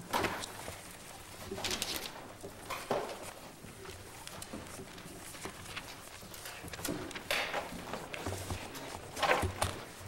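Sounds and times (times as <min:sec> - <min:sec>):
rustling of people moving: 0:00.0 - 0:10.0.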